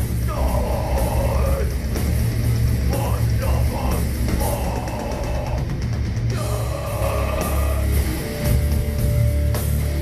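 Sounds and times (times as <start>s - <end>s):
distorted electric guitars: 0.0s - 10.0s
fast drum kit: 0.0s - 10.0s.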